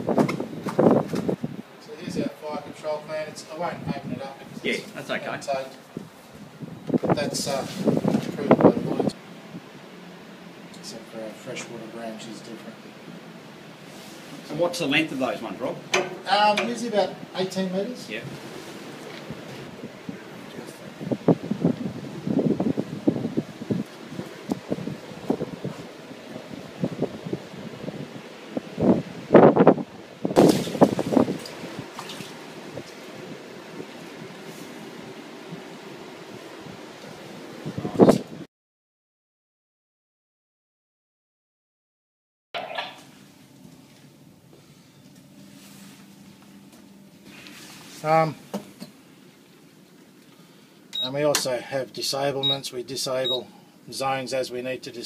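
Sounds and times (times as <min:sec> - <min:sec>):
wind gusting on microphone: 0:00.0 - 0:10.4, 0:18.1 - 0:38.5
ship interior background noise: 0:00.0 - 0:38.4, 0:42.6 - 0:53.7
short high beep: 0:53.2 - 0:53.4.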